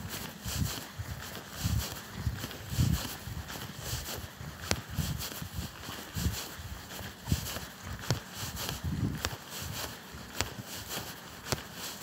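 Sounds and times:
bare footsteps on grass: 0.0 - 12.0.

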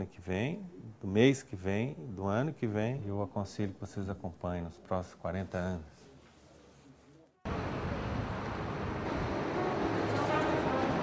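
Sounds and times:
faint music: 0.0 - 11.0
passing traffic: 7.5 - 11.0.

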